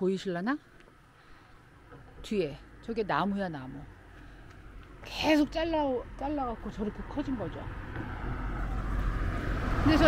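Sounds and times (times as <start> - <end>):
vehicle approaching on road: 0.9 - 10.0.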